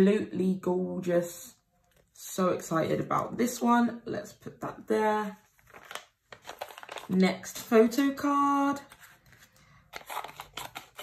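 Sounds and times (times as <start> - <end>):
scissors snipping envelope: 9.9 - 11.0.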